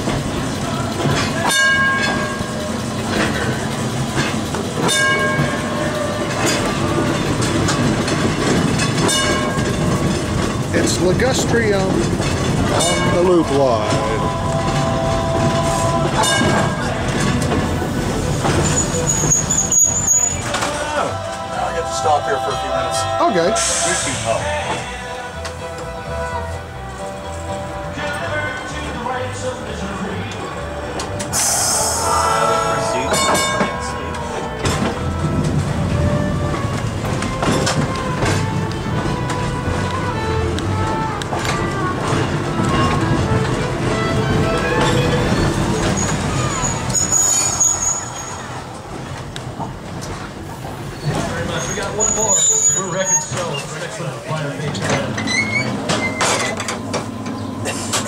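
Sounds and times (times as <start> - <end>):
streetcar rolling along track: 0.0 - 58.0
high wheel squeals: 0.6 - 25.0, 31.2 - 49.0, 50.5 - 58.0.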